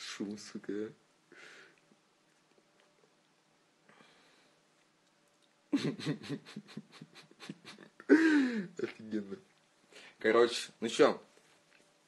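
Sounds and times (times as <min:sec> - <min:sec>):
man laughing: 0:05.7 - 0:09.3.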